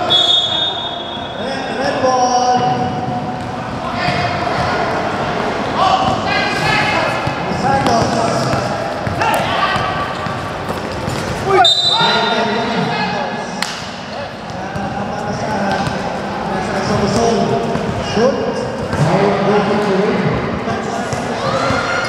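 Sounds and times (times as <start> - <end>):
referee's whistle: 0.0 - 1.5, 11.5 - 12.4
players' voices: 0.0 - 22.0
balls bouncing on hard court: 6.0 - 11.6, 13.6 - 16.2, 16.8 - 19.2.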